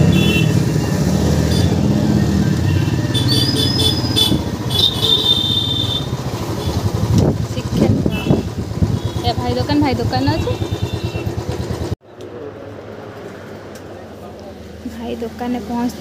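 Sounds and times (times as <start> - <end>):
motorcycle engines running: 0.0 - 16.0
voices: 4.5 - 16.0.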